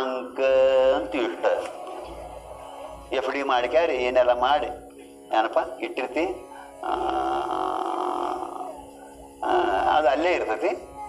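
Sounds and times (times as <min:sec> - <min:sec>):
man holding long vowel: 0:05.3 - 0:11.0.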